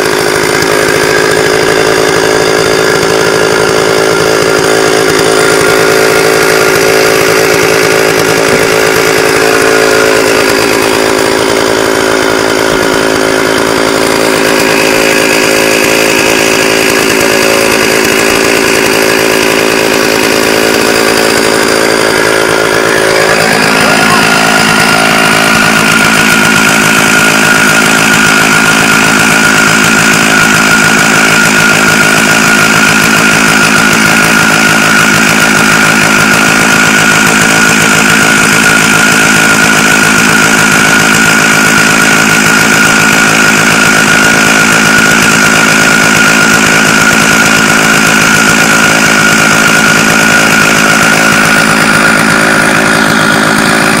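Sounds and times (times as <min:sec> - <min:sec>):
chainsaw cutting log at high revs: 0:00.0 - 0:54.0.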